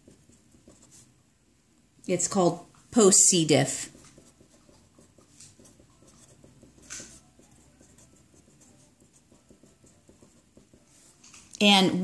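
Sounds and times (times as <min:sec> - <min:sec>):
marker writing on paper: 0:00.0 - 0:01.1, 0:03.0 - 0:11.4.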